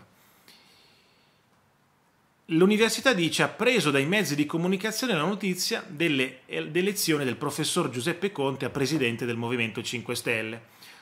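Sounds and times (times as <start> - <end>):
faint breath through nose: 0.1 - 1.5, 10.7 - 11.0.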